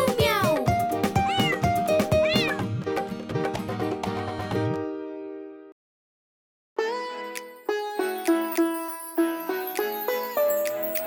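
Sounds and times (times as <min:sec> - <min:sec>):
children's song backing music: 0:00.0 - 0:01.4
cartoon cat meowing: 0:01.2 - 0:02.8.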